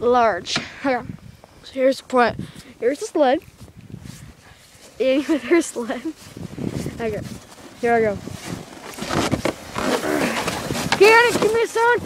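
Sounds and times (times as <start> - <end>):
footsteps crunching in snow: 2.5 - 12.0
plastic sled scraping: 4.9 - 12.0.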